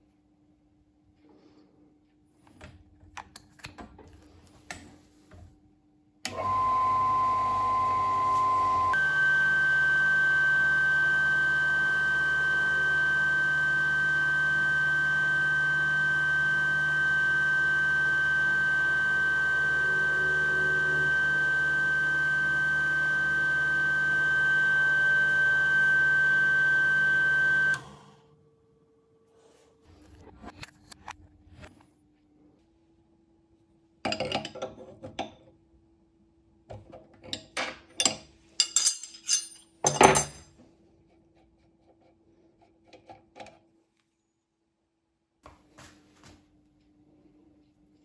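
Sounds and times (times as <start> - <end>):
mill motor whining: 6.3 - 28.2.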